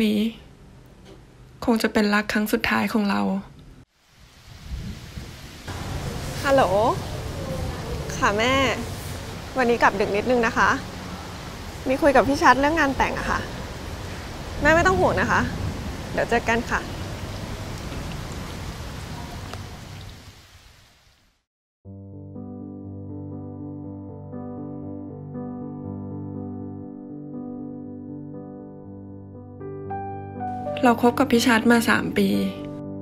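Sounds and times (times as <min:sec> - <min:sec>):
even hiss: 0:04.0 - 0:16.0
rain pattering: 0:04.0 - 0:21.4.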